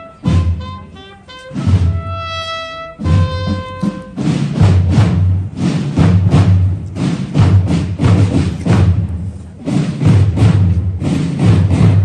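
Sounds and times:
drum-led music: 0:00.0 - 0:12.0
heavy drum strokes: 0:00.0 - 0:12.0.

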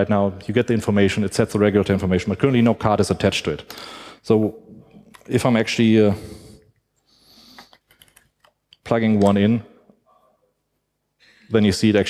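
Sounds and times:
man talking: 0:00.0 - 0:06.6, 0:08.8 - 0:09.8, 0:11.5 - 0:12.0.

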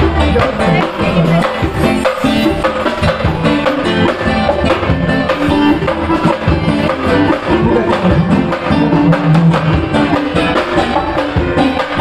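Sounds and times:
drum kit and hand drums beat: 0:00.0 - 0:12.0
guitar: 0:00.0 - 0:12.0
live band playing dance music: 0:00.0 - 0:12.0.

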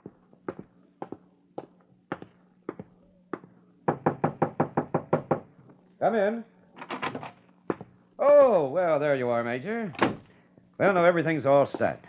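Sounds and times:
footsteps on a hard floor: 0:00.0 - 0:03.5
knocking on a door: 0:03.9 - 0:05.5.

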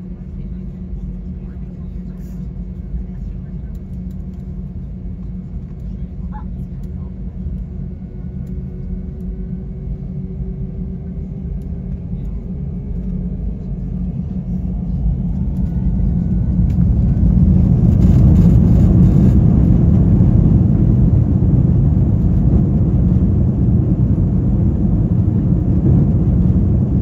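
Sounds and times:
jet engines rumbling in cabin: 0:00.0 - 0:27.0.

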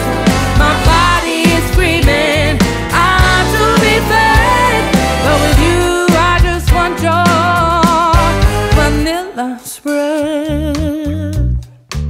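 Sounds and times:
bass: 0:00.0 - 0:09.3, 0:10.0 - 0:12.0.

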